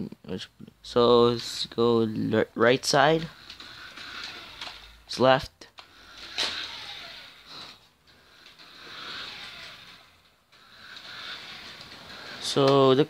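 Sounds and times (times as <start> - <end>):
wheels on wooden floor: 0.9 - 13.0
toy car electric motor whirring: 2.8 - 13.0.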